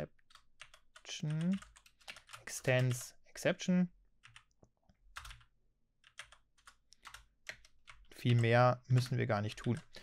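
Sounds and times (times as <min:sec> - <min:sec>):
keystrokes on computer keyboard: 0:00.3 - 0:03.0, 0:04.2 - 0:10.0.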